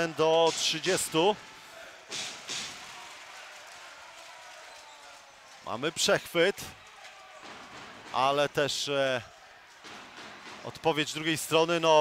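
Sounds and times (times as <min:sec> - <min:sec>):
crowd and hall noise: 0:00.0 - 0:12.0.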